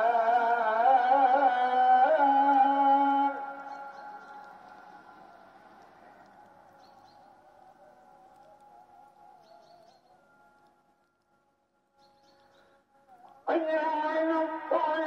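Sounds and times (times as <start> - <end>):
call to prayer over loudspeakers: 0.0 - 11.0, 13.0 - 15.0
faint distant sung notes: 2.5 - 13.5.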